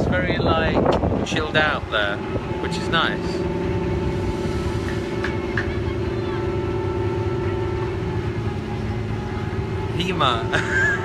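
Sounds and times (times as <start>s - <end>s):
ferry engine running: 0.0s - 11.0s.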